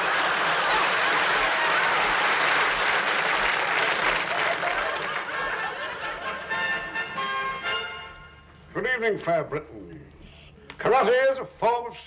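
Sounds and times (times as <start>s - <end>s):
studio audience applauding: 0.0s - 6.4s.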